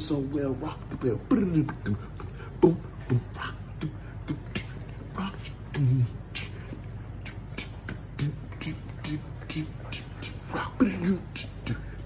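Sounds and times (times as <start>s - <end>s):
man beatboxing: 0.0s - 12.0s.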